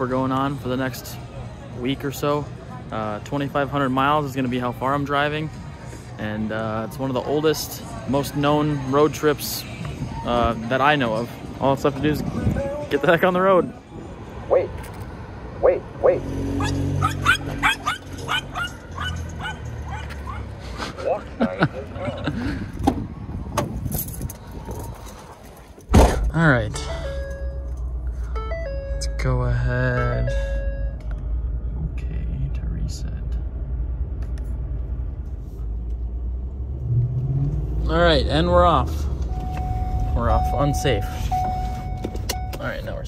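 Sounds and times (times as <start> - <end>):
street noise with voices: 0.0 - 43.0
pickup engine drone inside cab: 25.8 - 38.5, 39.1 - 43.0
short electronic tones: 26.8 - 31.0.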